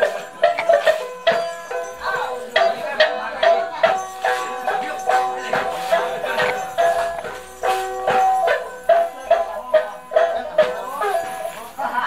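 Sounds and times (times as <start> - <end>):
regular beat: 0.0 - 12.0.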